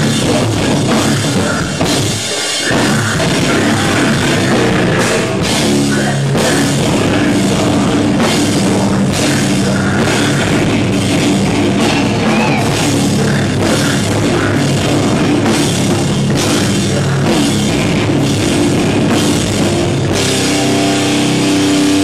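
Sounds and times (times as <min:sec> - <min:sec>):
bass guitar: 0:00.0 - 0:22.0
distorted electric guitars: 0:00.0 - 0:22.0
pounding drum kit: 0:00.0 - 0:22.0.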